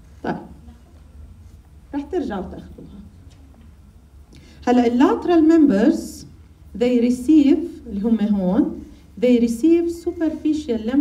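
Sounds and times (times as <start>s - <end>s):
low steady hum: 0.0s - 11.0s
woman speaking: 0.2s - 1.0s, 1.9s - 3.2s, 4.6s - 11.0s.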